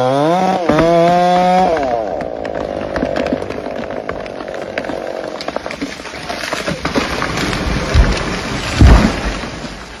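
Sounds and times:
tree crashing to ground: 0.5s - 10.0s.

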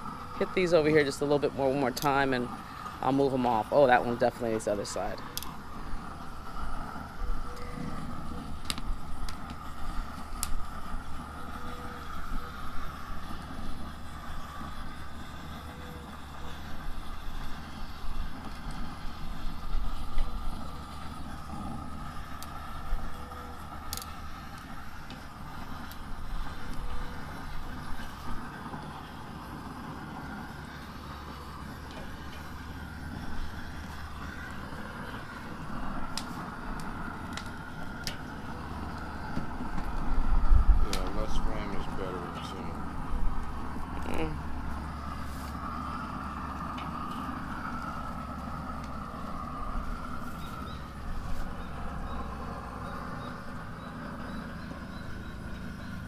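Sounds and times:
torch flame rushing: 0.0s - 55.6s.

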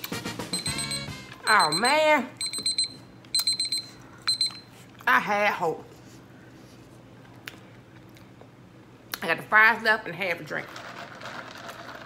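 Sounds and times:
timer alarm high-pitched beeps: 0.5s - 4.6s.

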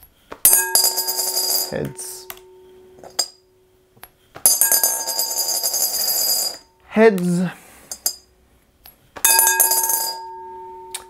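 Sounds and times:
coin clinking on glass: 0.5s - 2.4s, 4.5s - 6.7s, 9.3s - 11.0s
coin spinning and rattling in bowl: 0.8s - 1.8s, 4.8s - 6.7s.

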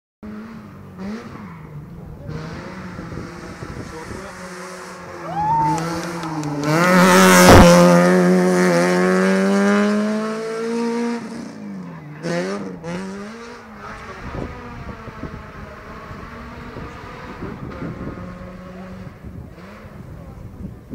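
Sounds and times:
rally car engine revving: 0.2s - 20.9s.

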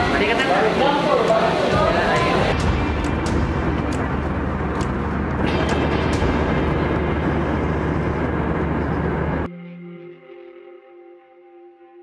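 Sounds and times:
airliner cabin roar: 0.0s - 9.5s
low drone: 1.6s - 11.7s.

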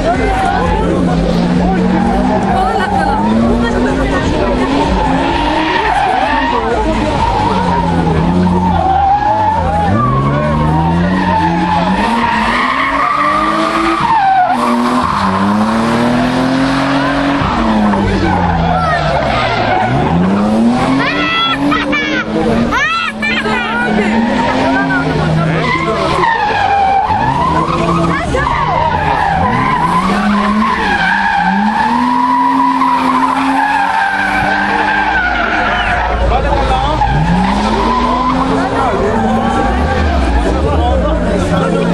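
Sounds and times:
car engine revving: 0.0s - 41.9s
tyres squealing: 0.0s - 41.9s.

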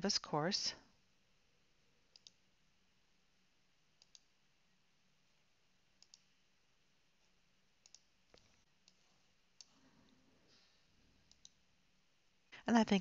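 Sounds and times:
faint computer mouse clicks: 2.1s - 2.4s, 4.0s - 4.3s, 6.0s - 6.3s, 7.8s - 9.0s, 11.3s - 11.6s.

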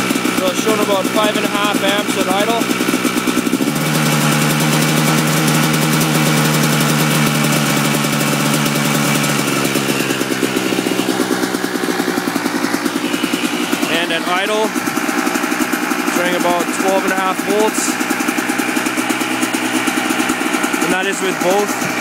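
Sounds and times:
two-stroke engine idling: 0.0s - 22.0s.

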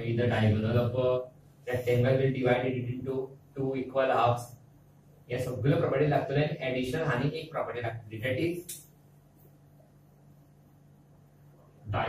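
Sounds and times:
man's voice: 0.0s - 4.5s
steady low hum: 0.0s - 12.0s.

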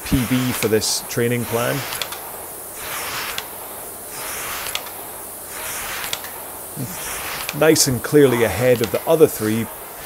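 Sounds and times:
rowing machine flywheel whooshing: 0.0s - 10.0s.

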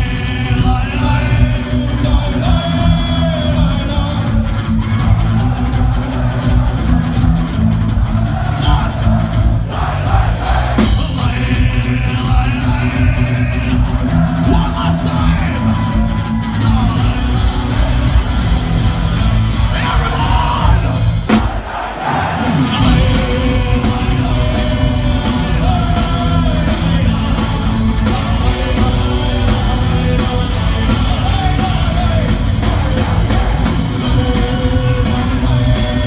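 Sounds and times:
metal band playing live: 0.0s - 36.0s.

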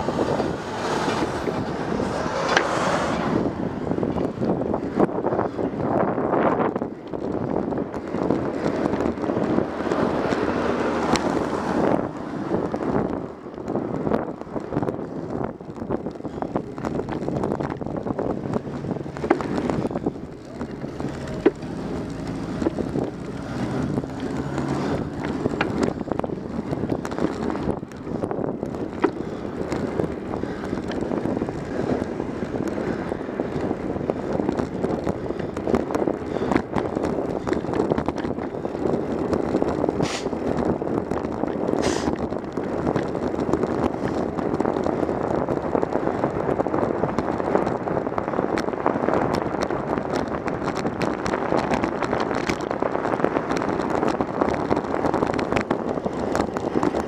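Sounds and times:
wind and road noise: 0.0s - 57.0s.

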